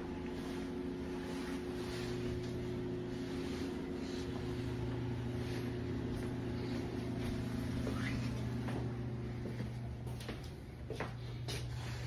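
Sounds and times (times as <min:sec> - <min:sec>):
low hum: 0:00.0 - 0:12.0
footsteps on hard floor: 0:00.2 - 0:12.0.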